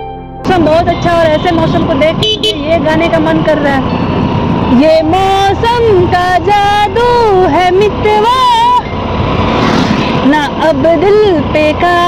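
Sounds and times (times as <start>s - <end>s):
wind and road rush: 0.4s - 12.0s
woman singing: 4.7s - 8.9s, 10.2s - 12.0s.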